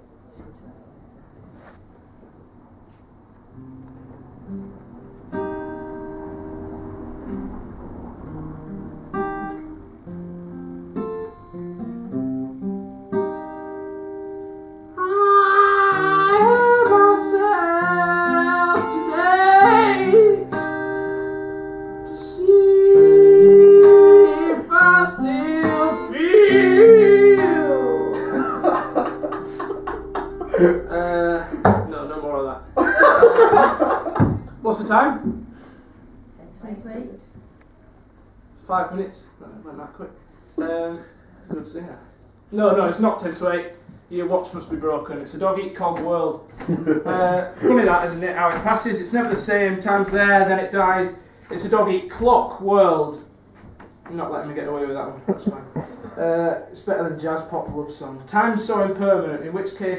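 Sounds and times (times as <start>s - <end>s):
acoustic guitar plucked: 3.5s - 36.4s
man singing: 15.0s - 20.5s, 22.1s - 29.1s.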